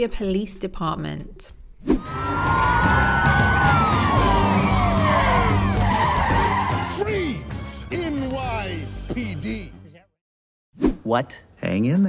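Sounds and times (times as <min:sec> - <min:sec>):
tyres squealing: 0:02.1 - 0:07.1.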